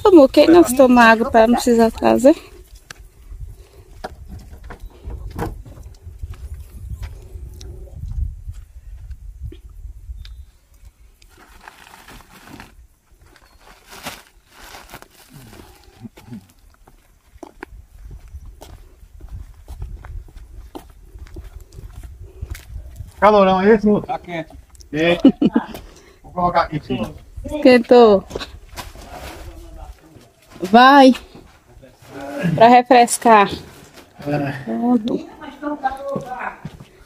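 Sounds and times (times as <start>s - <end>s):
plastic rustling: 11.3s - 16.0s.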